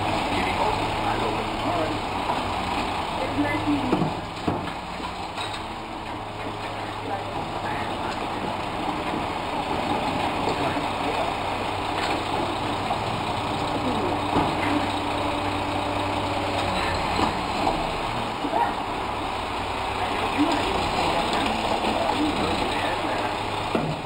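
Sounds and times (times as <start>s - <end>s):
diesel engine idling: 0.0s - 24.0s.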